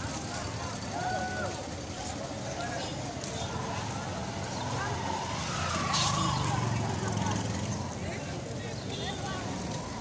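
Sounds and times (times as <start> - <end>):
people talking: 0.0 - 10.0
vehicle engine: 0.0 - 10.0.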